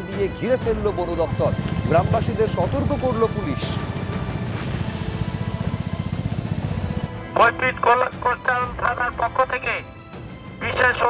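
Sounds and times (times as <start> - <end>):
pulsing low bass music: 0.7 - 7.1.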